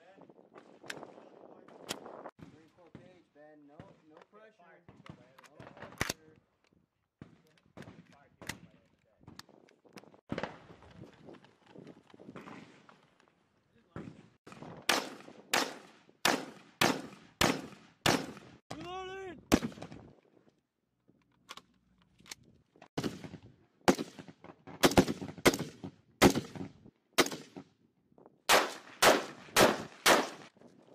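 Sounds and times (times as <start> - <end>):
rifle gunshots: 14.8 - 18.6, 19.5 - 20.0, 23.0 - 27.6, 28.5 - 30.5.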